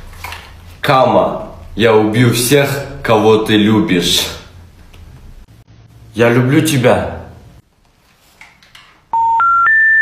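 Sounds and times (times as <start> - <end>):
rising telephone beeps: 9.1 - 10.0.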